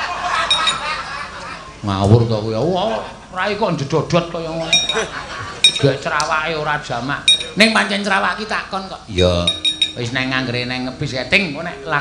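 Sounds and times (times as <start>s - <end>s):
ringing metallic clinks: 0.5s - 0.8s, 4.7s - 5.9s, 7.3s - 7.6s, 9.4s - 10.2s
men talking: 1.5s - 12.0s.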